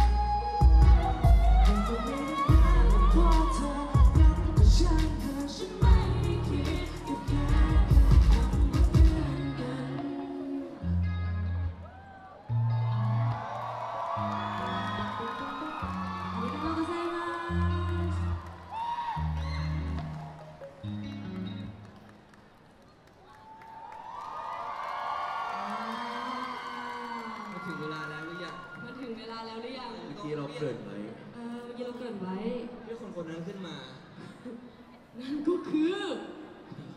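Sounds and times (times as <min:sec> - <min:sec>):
deep bass notes: 0:00.0 - 0:09.7
live pop music: 0:00.0 - 0:12.1, 0:14.2 - 0:18.4
audience cheering and whooping: 0:11.8 - 0:20.9, 0:23.2 - 0:29.4.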